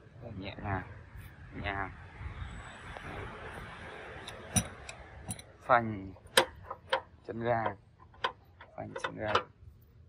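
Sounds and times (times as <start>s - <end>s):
sharp metallic clicks: 4.2s - 5.6s.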